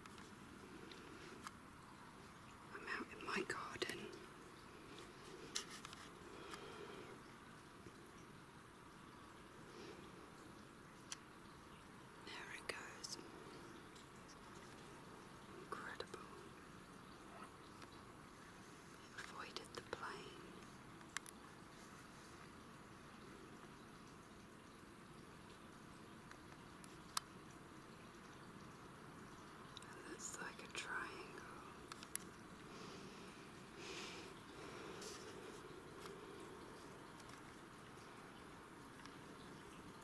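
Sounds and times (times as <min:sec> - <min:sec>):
low hiss: 0:00.0 - 0:40.0
faint whispering voice: 0:02.7 - 0:04.3, 0:12.2 - 0:13.8, 0:15.6 - 0:16.6, 0:18.9 - 0:20.8, 0:29.8 - 0:31.8.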